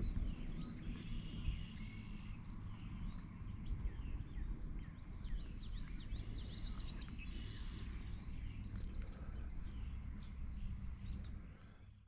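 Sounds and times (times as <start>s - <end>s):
songbirds singing: 0.0s - 12.0s
steady low rumble: 0.0s - 12.0s.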